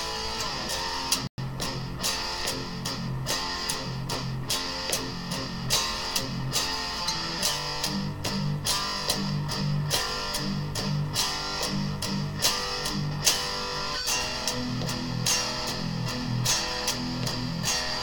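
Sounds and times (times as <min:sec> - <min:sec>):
electric guitar picked notes: 0:00.0 - 0:18.0.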